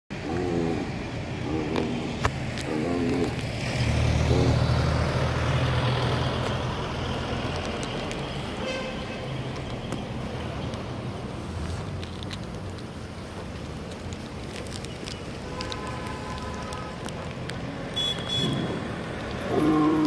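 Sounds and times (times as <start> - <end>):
car engine passing by: 0.3 - 8.6.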